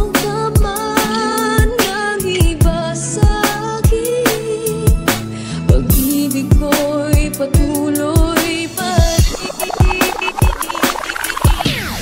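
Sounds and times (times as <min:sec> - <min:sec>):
dance music: 0:08.7 - 0:12.0
kick-drum beat: 0:09.0 - 0:11.6.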